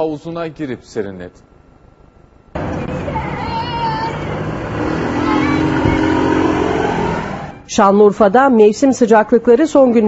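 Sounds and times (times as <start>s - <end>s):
car engine drone: 2.5s - 7.7s
rumble of passing cars: 2.6s - 7.7s.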